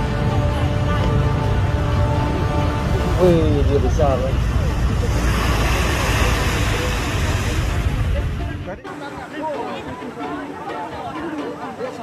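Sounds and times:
rushing outdoor noise: 0.0 - 12.0.

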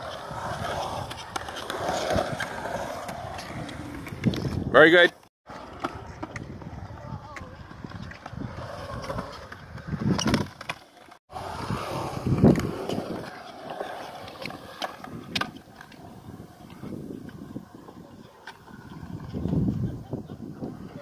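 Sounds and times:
skateboard wheels rolling on concrete: 0.0 - 21.0.

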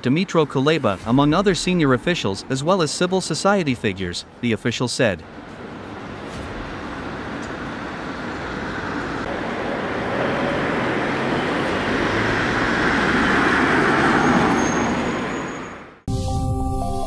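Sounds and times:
street traffic noise: 0.0 - 16.1
motor vehicle passing: 5.3 - 15.9.

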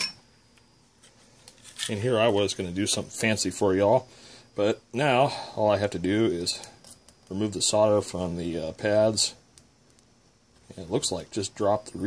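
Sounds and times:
man speaking: 1.8 - 6.7, 7.3 - 9.4, 10.7 - 12.0.

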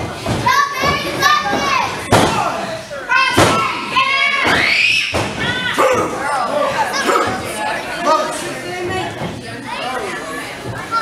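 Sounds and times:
children shouting and cheering: 0.4 - 2.0, 3.1 - 6.2.

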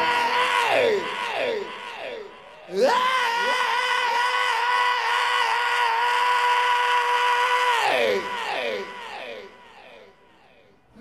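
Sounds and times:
man singing long high wail: 0.0 - 10.7.

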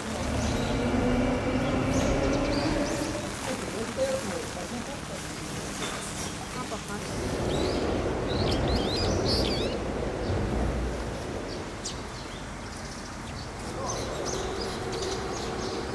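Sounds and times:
small birds chirping: 0.0 - 15.9.

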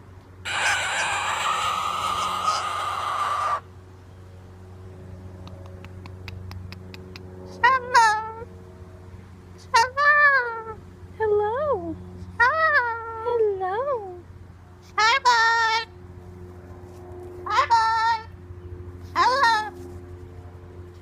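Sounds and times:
steady low hum: 0.0 - 15.1
cockatoo word-like calls: 0.5 - 3.7, 19.1 - 19.7.

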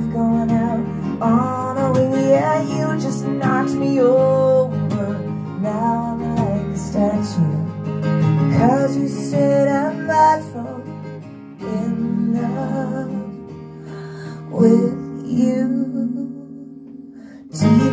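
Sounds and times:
person singing: 0.0 - 7.8, 8.5 - 17.9
strummed acoustic guitar: 0.0 - 17.9.

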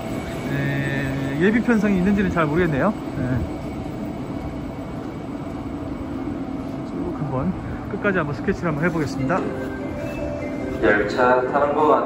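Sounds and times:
electric train running slowly: 0.0 - 12.0.

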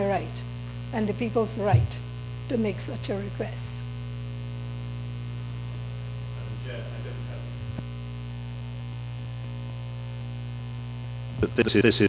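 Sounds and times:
electrical mains hum: 0.0 - 12.0
faint murmur: 6.0 - 8.7.

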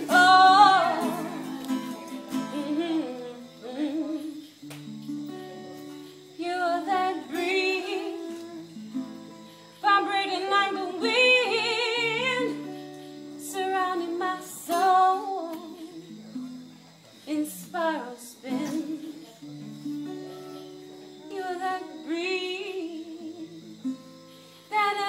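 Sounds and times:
woman singing with vibrato: 0.0 - 4.6, 6.4 - 8.8, 9.8 - 12.8, 13.4 - 16.6, 17.4 - 19.4, 21.2 - 23.7.

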